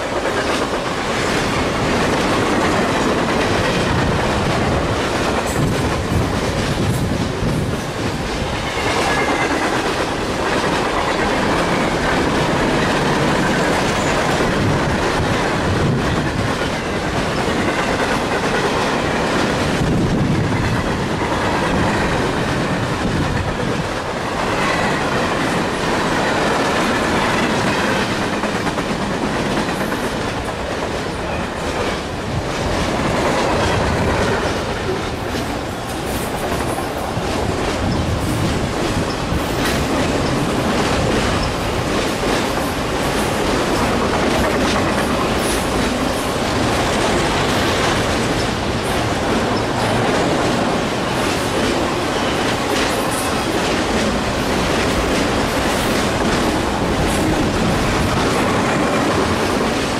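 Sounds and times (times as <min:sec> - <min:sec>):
freight train rumbling: 0:00.0 - 0:59.9.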